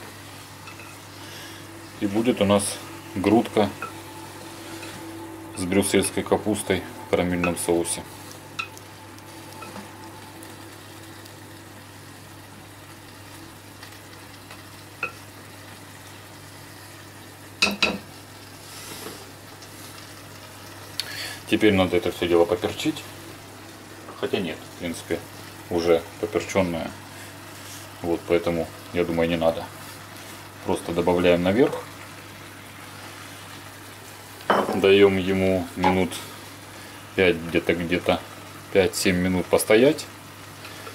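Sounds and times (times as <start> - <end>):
low hum: 0.0 - 12.4
food sizzling in a pan: 0.0 - 40.9.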